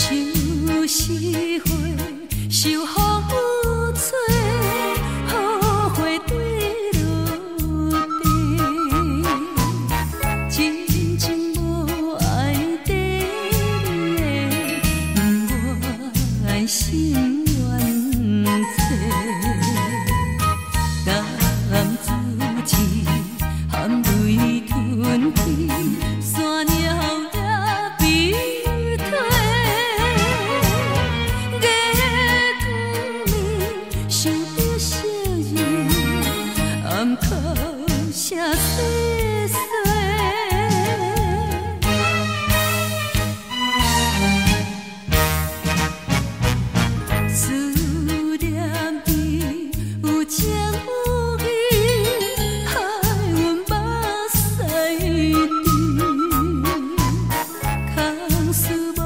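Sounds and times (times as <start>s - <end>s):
steady bass line: 0.0s - 39.4s, 40.8s - 55.3s
woman singing with vibrato: 0.0s - 42.0s, 47.1s - 59.0s.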